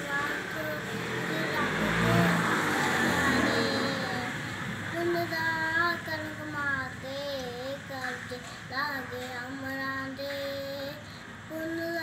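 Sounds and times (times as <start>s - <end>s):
boy singing: 0.0s - 12.0s
motor vehicle passing: 0.0s - 12.0s.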